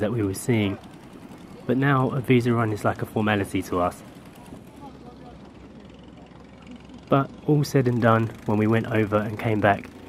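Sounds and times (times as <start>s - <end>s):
boat engine drone: 0.0s - 10.0s.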